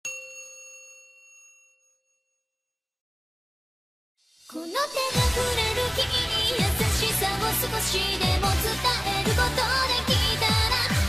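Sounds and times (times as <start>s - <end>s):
bright bell-like chime: 0.0s - 2.8s.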